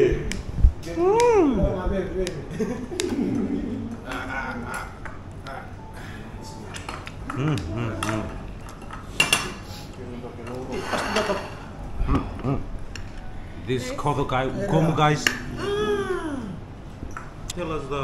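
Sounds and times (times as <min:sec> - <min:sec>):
low voices: 0:02.9 - 0:06.6, 0:07.2 - 0:08.5, 0:14.6 - 0:16.7.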